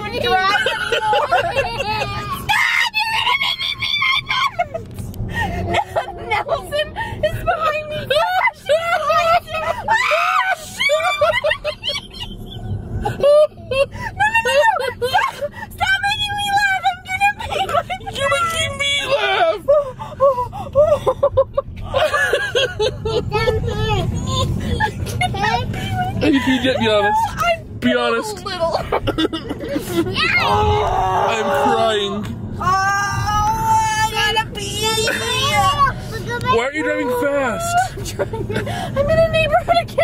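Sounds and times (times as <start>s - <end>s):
car engine rumbling: 0.0s - 40.0s
woman shrieking laughter: 8.2s - 15.6s, 37.3s - 38.8s.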